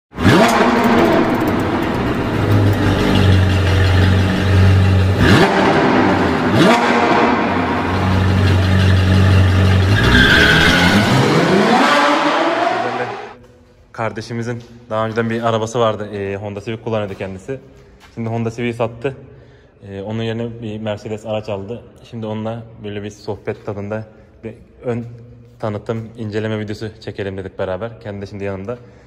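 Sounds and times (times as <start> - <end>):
sports car engine revving: 0.1 - 13.4.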